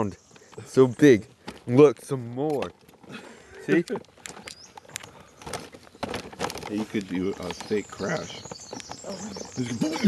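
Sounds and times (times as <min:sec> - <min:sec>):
wheelchair rolling over twigs: 0:00.0 - 0:10.0.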